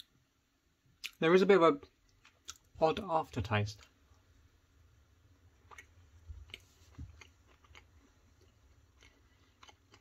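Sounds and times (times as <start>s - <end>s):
faint chewing: 1.8s - 2.8s, 5.5s - 10.0s.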